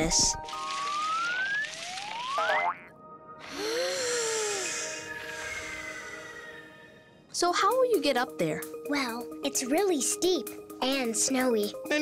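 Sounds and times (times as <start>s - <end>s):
light background music: 0.0s - 12.0s
cartoon whistle glides: 3.5s - 7.2s.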